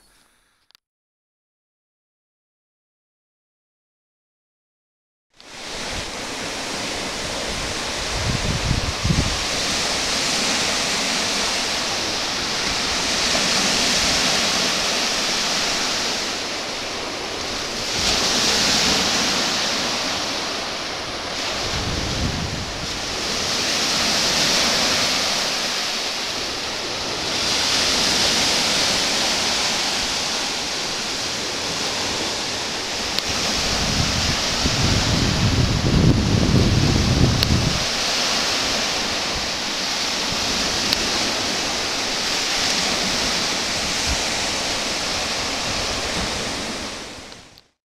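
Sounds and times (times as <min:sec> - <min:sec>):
surf washing onto beach: 0:05.4 - 0:47.6
wind buffeting microphone: 0:05.6 - 0:47.6.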